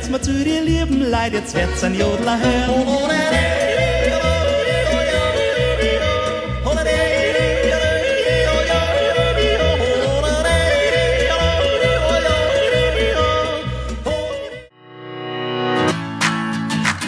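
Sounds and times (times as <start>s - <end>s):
person yodeling: 1.6s - 14.7s.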